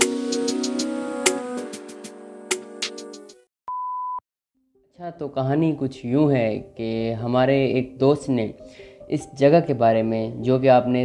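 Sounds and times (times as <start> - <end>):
electronic intro music: 0.0 - 3.5
electronic beep: 3.7 - 4.2.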